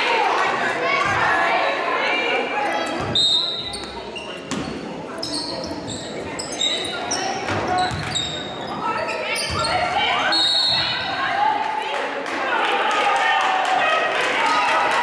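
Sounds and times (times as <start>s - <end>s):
voices calling out in a hall: 0.0s - 15.0s
sneakers squeaking on gym floor: 2.7s - 11.2s
basketball bouncing: 7.5s - 8.2s.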